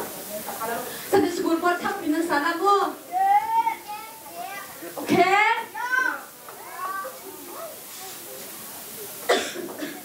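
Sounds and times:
murmur of voices: 0.0s - 10.0s
person coughing: 9.3s - 10.0s.

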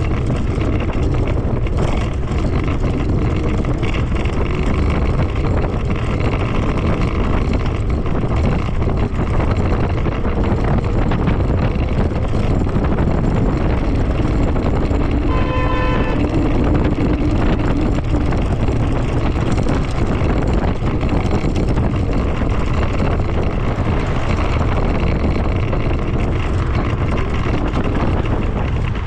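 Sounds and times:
street traffic: 0.0s - 29.0s
wind buffeting microphone: 0.0s - 29.0s
short high beep: 15.3s - 16.2s.

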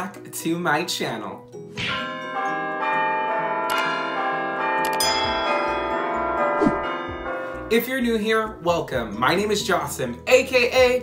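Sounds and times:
ringing bell chimes: 2.0s - 7.6s.

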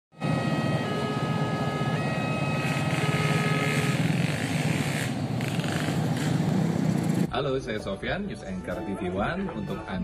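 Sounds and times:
train wheels rumbling on track: 2.6s - 7.3s.

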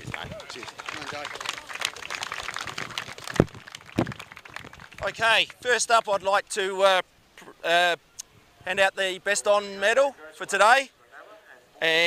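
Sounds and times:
people clapping: 0.0s - 6.1s.

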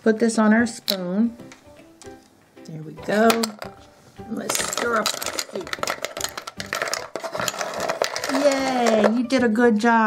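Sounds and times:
wooden pieces clattering in canister: 3.2s - 3.8s, 4.4s - 9.4s.

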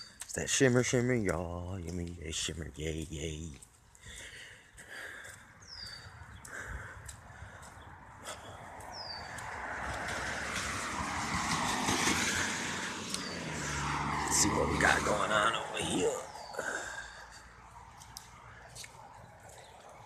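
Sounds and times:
car tyres hissing on wet pavement: 9.7s - 14.3s.

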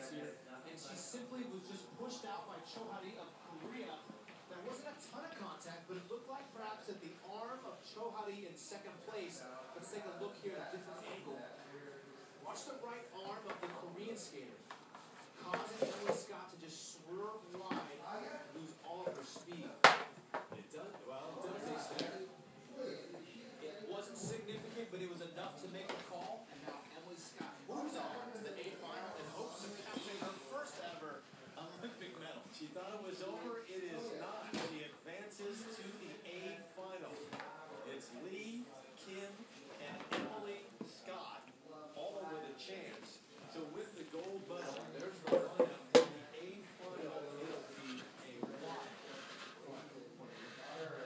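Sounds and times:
faint television voices: 0.0s - 51.0s.

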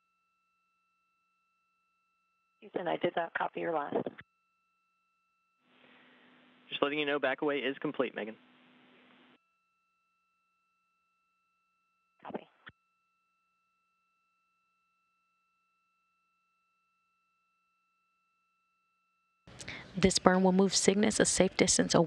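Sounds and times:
faint steady electronic tones: 2.1s - 10.0s, 19.5s - 22.0s.

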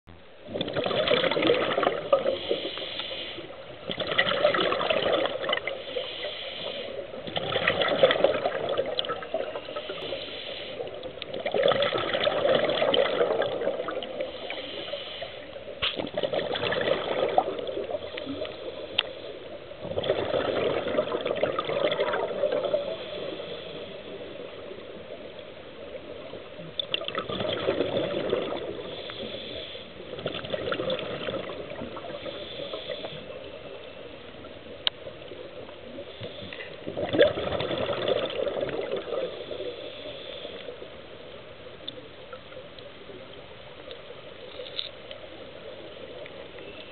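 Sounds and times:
gurgling exhaled bubbles: 0.4s - 2.8s, 3.4s - 6.0s, 6.6s - 14.9s, 16.0s - 19.0s, 19.6s - 33.8s, 35.2s - 39.8s
regulator inhale hiss: 2.2s - 3.7s, 5.7s - 7.2s, 9.3s - 11.2s, 14.1s - 16.0s, 17.8s - 19.7s, 22.7s - 24.8s, 28.7s - 30.1s, 32.1s - 33.8s, 35.9s - 36.9s, 39.2s - 41.1s.

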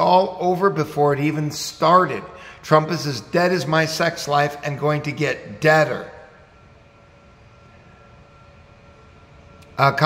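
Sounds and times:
low hum: 0.0s - 10.0s
thin steady tones: 0.0s - 10.0s.

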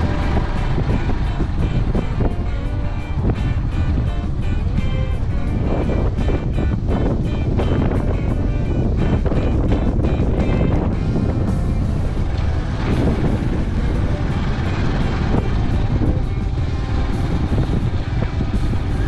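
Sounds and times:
background music: 0.0s - 19.0s
motorbike engine rumble: 0.0s - 19.0s
wind noise: 0.0s - 19.0s.

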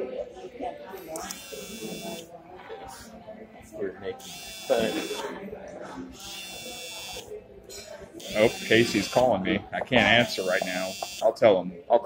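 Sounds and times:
phone vibration buzzing: 1.3s - 2.2s, 4.2s - 5.2s, 6.2s - 7.3s, 8.2s - 9.3s, 10.2s - 11.2s.

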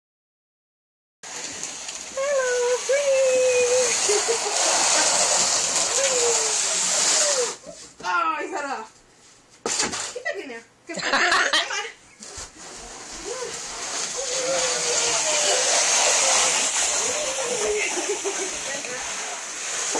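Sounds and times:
cardboard box scraping on wood floor: 1.3s - 8.0s, 12.2s - 19.9s.

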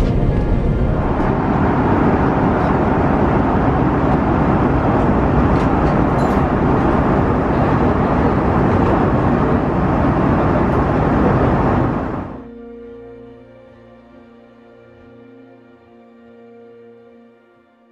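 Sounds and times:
airliner cabin drone: 0.0s - 15.3s.

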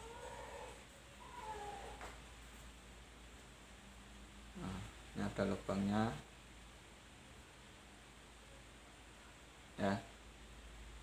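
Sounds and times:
cat meowing: 0.0s - 2.1s.

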